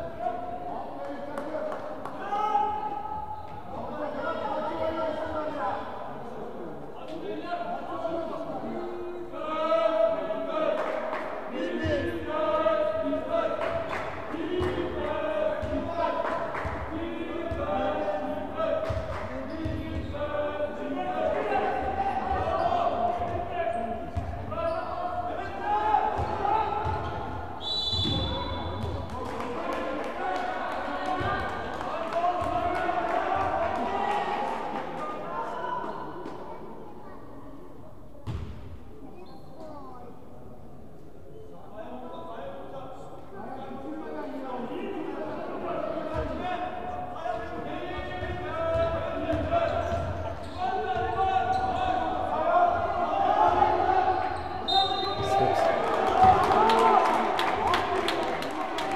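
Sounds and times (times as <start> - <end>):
spectators' voices in echoing hall: 0.0 - 58.9
referee's whistle: 27.6 - 28.8, 54.4 - 55.4.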